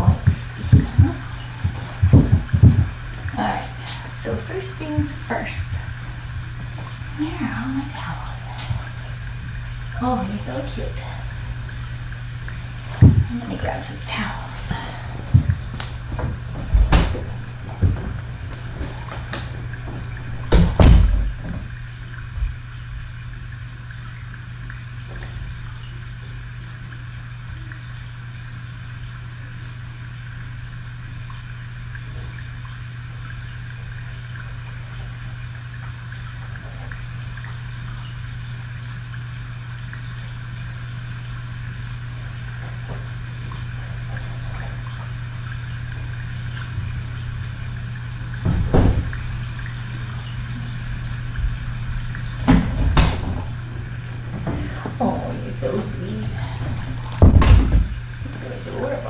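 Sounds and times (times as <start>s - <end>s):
knocks: 0.0s - 3.0s
steady low hum: 0.0s - 59.0s.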